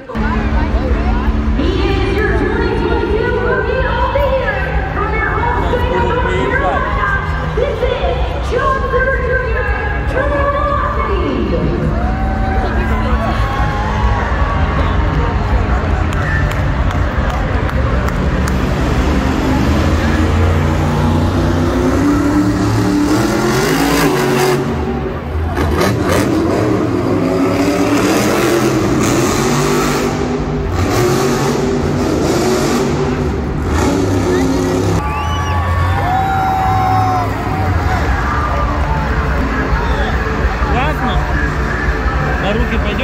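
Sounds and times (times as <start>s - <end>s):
truck engine revving: 14.2s - 36.0s.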